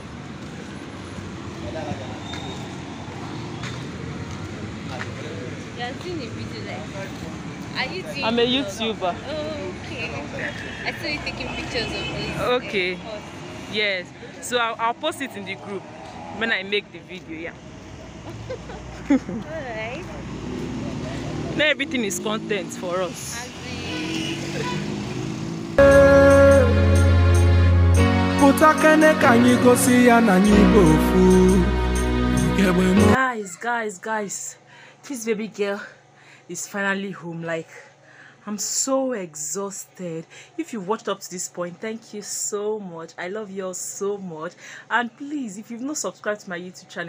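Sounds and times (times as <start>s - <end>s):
road traffic rumble: 0.0s - 47.0s
loud music: 25.8s - 33.2s.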